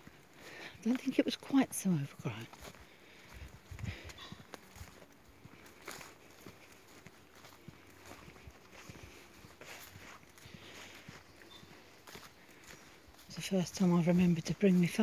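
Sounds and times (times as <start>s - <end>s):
footsteps on dirt path: 0.0s - 15.0s.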